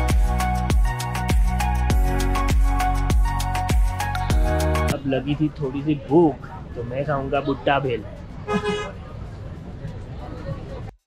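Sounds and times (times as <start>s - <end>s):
faint voices: 5.0s - 11.0s
vehicle horn toot: 8.5s - 8.9s.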